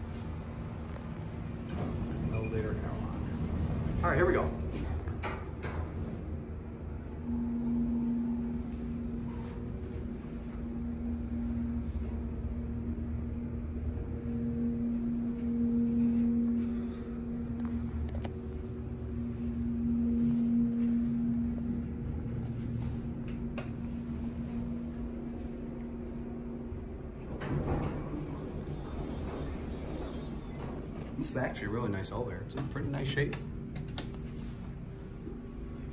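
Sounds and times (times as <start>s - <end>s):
elevator pump motor humming: 0.0s - 35.9s
low rumble: 0.0s - 35.9s.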